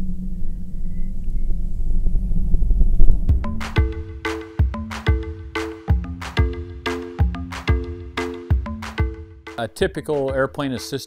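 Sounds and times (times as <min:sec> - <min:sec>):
music with percussive hits: 0:03.3 - 0:11.0.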